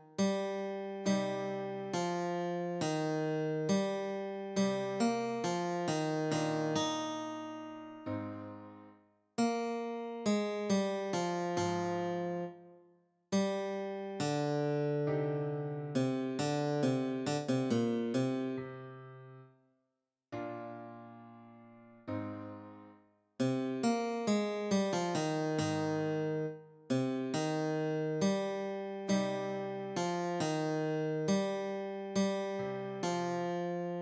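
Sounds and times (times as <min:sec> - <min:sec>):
slow guitar melody: 0:13.4 - 0:18.6, 0:23.4 - 0:33.6.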